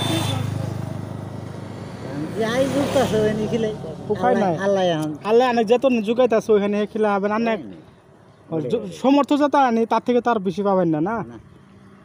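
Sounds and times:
vehicle engine passing: 0:00.0 - 0:05.7.

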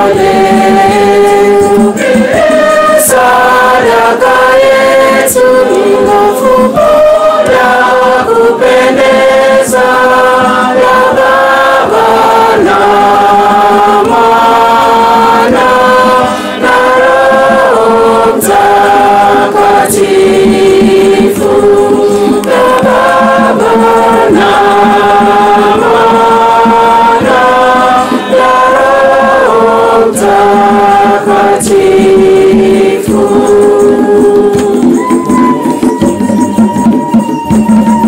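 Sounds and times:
choir singing a hymn: 0:00.0 - 0:35.8
sharp percussive clicks: 0:18.5 - 0:26.0.

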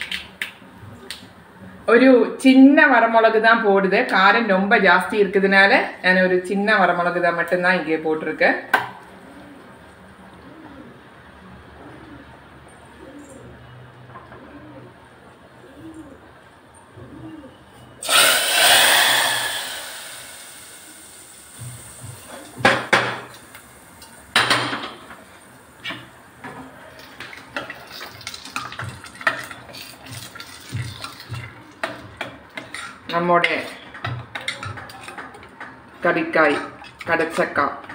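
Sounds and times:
hot oil sizzling in curry: 0:18.0 - 0:33.2.

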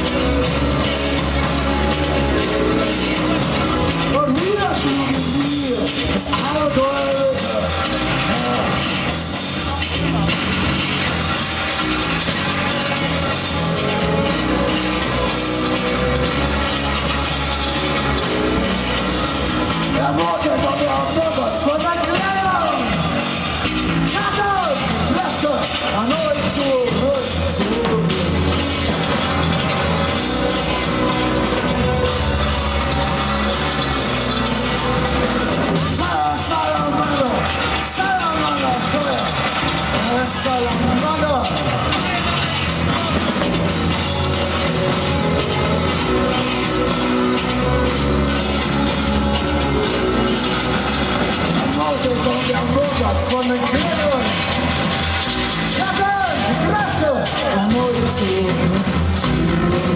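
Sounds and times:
drums: 0:00.0 - 0:59.9
electric bass line: 0:00.0 - 0:59.9
live band playing loud: 0:00.0 - 0:59.9
man singing amplified: 0:04.3 - 0:09.2, 0:56.6 - 0:59.9
man singing: 0:57.5 - 0:59.9.

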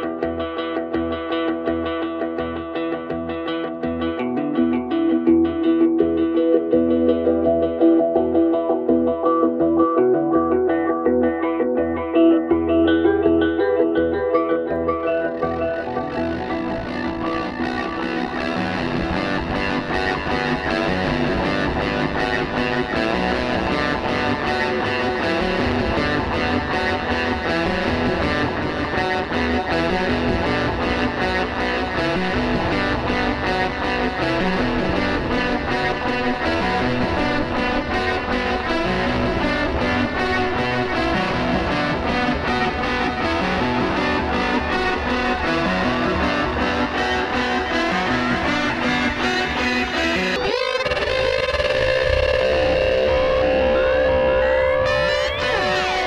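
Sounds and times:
distorted pulsing electric guitar: 0:00.0 - 0:56.0.

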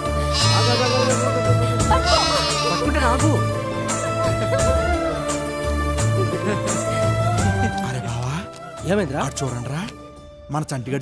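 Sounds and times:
film music with pulsing bass: 0:00.0 - 0:11.0
young goat bleating: 0:00.4 - 0:01.3, 0:01.9 - 0:03.0.

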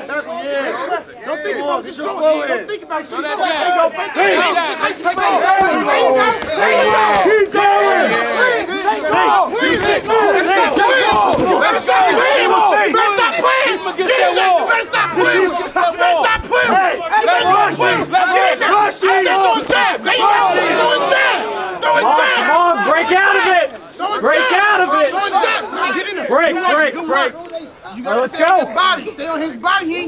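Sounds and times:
crowd yelling and cheering: 0:00.0 - 0:30.0.

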